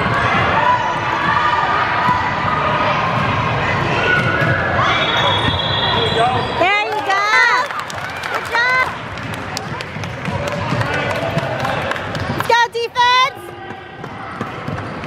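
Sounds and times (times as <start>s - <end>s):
sneakers squeaking: 3.1s - 6.6s, 12.1s - 15.0s.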